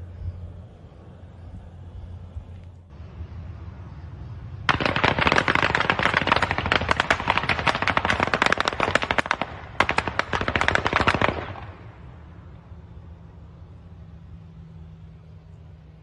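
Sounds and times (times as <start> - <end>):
automatic gunfire bursts: 4.7 - 11.8.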